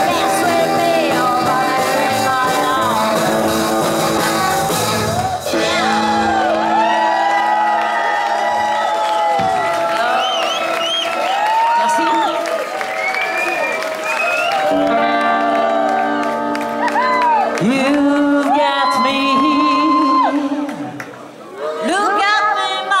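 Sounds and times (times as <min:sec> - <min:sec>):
garage rock band playing: 0:00.0 - 0:07.5, 0:14.6 - 0:18.0.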